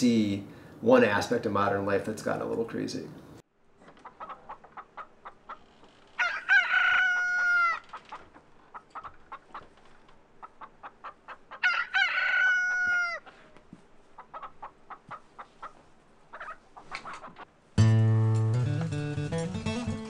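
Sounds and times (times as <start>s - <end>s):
rooster crowing: 6.1s - 8.0s, 11.5s - 13.4s.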